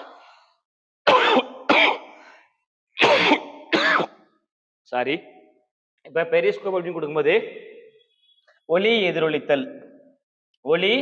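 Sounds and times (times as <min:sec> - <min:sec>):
man coughing: 0:01.1 - 0:02.2, 0:03.0 - 0:04.2.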